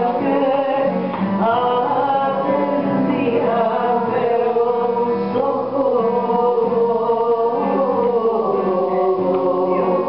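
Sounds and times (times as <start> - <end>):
person singing folk song: 0.0 - 10.0
plucked string accompaniment: 0.0 - 10.0.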